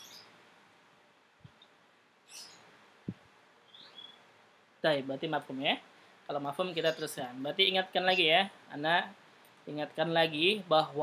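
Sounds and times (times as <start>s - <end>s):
room hiss: 0.0s - 11.0s
high chirps: 3.6s - 4.3s.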